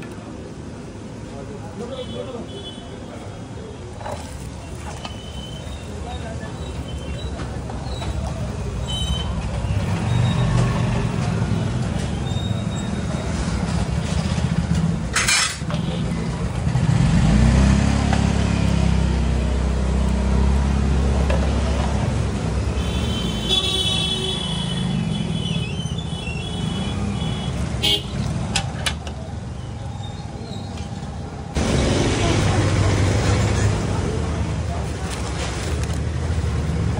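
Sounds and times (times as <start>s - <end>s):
vehicle engines rumbling: 0.0s - 36.9s
car horn: 22.8s - 25.6s, 26.2s - 28.2s.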